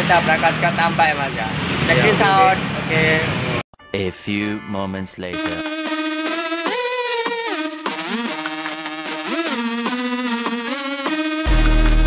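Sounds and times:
electronic melody sliding in pitch: 0:05.3 - 0:12.0.

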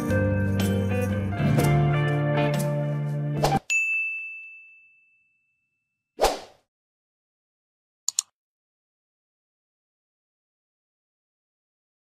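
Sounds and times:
background music: 0:00.0 - 0:03.7
bell-like ding: 0:03.7 - 0:05.8.

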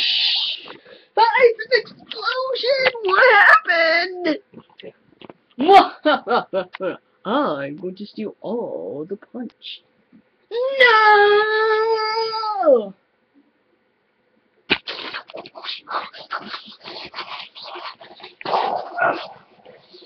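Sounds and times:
irregular scratchy noise: 0:14.7 - 0:20.0.

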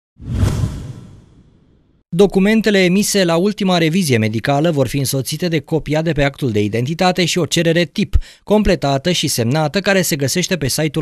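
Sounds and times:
whoosh: 0:00.2 - 0:02.0.

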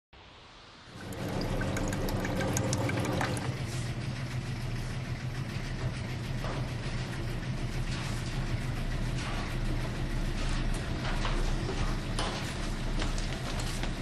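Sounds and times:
washing machines and dryers humming: 0:00.2 - 0:14.0.

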